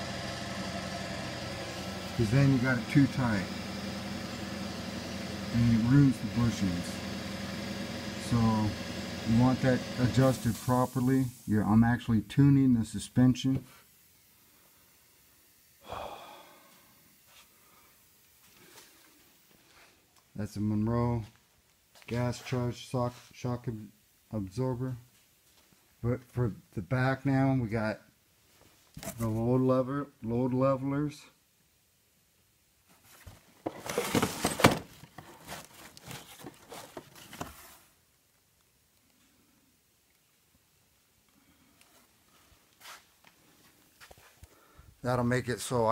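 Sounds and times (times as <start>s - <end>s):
breath-like exhale: 15.8s - 16.9s
faint handling noises: 32.8s - 38.4s
plastic and cardboard packaging rustling: 32.9s - 38.0s.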